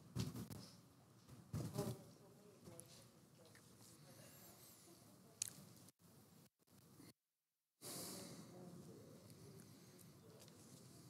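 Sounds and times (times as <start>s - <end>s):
distant murmur of people talking: 7.8s - 11.0s.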